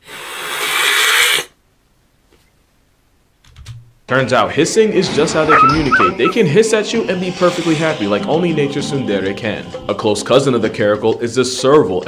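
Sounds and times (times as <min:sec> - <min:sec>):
wild cat hissing: 0:00.0 - 0:01.5.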